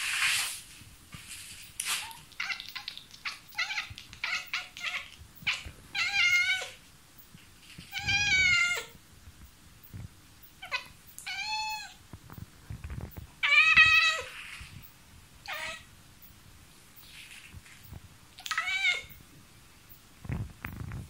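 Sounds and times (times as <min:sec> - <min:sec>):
cat chirping: 0:01.9 - 0:06.8, 0:07.8 - 0:09.0, 0:10.6 - 0:12.0, 0:13.4 - 0:14.6, 0:15.4 - 0:15.9, 0:18.4 - 0:19.2
cat meowing: 0:02.0 - 0:06.8, 0:07.9 - 0:09.0, 0:10.6 - 0:12.0, 0:13.4 - 0:14.4, 0:15.4 - 0:15.9, 0:18.4 - 0:19.2.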